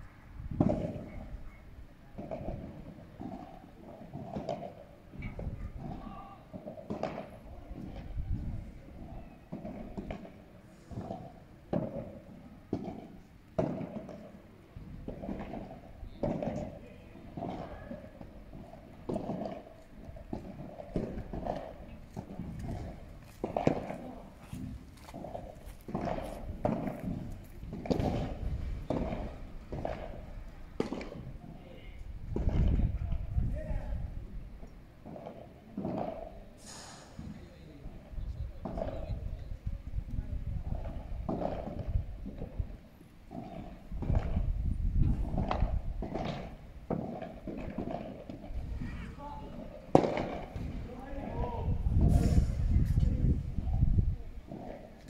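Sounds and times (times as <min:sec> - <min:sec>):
ball struck with rackets: 0:00.5 - 0:01.2, 0:04.1 - 0:08.0, 0:11.7 - 0:14.3, 0:20.3 - 0:30.2, 0:30.8 - 0:31.3, 0:40.7 - 0:42.4, 0:45.2 - 0:48.5, 0:49.9 - 0:50.8.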